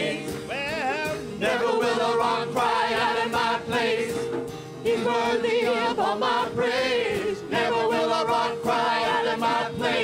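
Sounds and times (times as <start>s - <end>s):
voices singing together: 0.0s - 10.0s.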